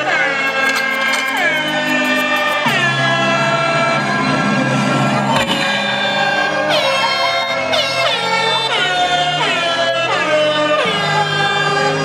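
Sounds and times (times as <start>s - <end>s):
music over outdoor pa: 0.0s - 12.0s.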